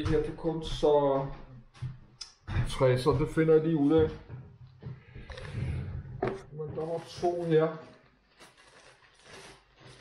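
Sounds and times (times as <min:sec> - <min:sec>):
paper magazines rustling: 0:06.8 - 0:10.0.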